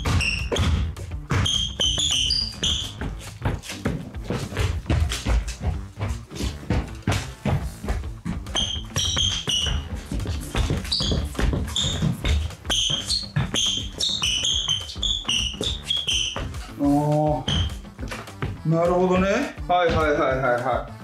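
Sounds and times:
footfalls on wood: 0:00.0 - 0:20.8
shoes squeaking on hardwood court: 0:00.0 - 0:21.0.

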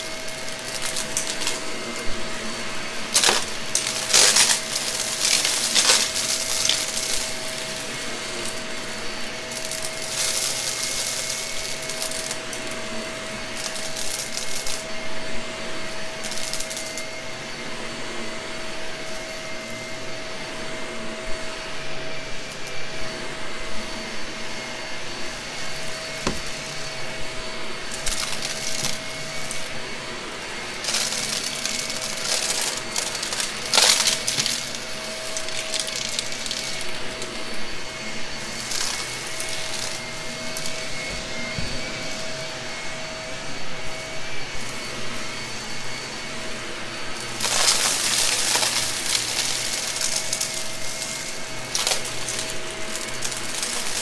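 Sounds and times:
debris rattling up vacuum: 0:00.0 - 0:15.0, 0:15.7 - 0:17.2, 0:25.8 - 0:43.0, 0:43.8 - 0:54.0
vacuum motor whine: 0:00.0 - 0:54.0.

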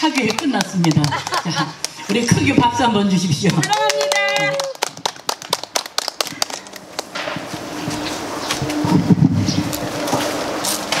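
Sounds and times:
voices: 0:00.0 - 0:04.8
audience clapping: 0:00.1 - 0:02.1, 0:03.4 - 0:07.2.

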